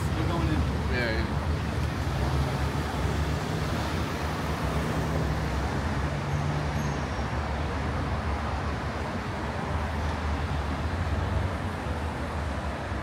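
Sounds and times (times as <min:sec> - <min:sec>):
vehicles passing: 0:00.0 - 0:13.0.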